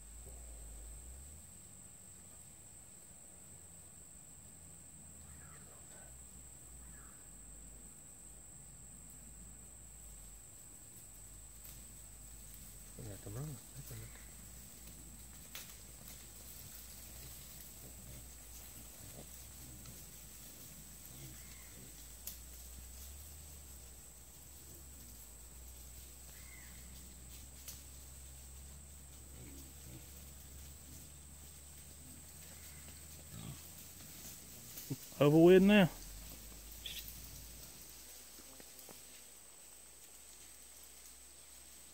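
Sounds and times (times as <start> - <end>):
high insect buzz: 0.0 - 41.9
wild hogs grunting: 11.0 - 38.4.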